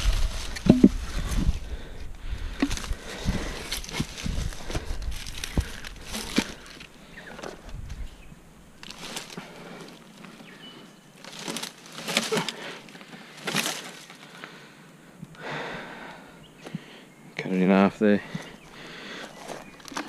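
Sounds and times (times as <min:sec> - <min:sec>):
rustling and scraping in leaves: 0:00.0 - 0:01.6, 0:02.8 - 0:07.7, 0:08.8 - 0:10.6, 0:11.2 - 0:14.3
wooden log knocks: 0:00.6 - 0:01.0.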